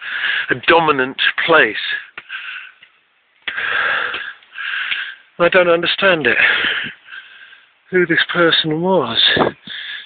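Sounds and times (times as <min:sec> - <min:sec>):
man breathing heavily: 0:00.0 - 0:00.6, 0:02.2 - 0:05.4, 0:06.4 - 0:07.9, 0:09.4 - 0:10.0.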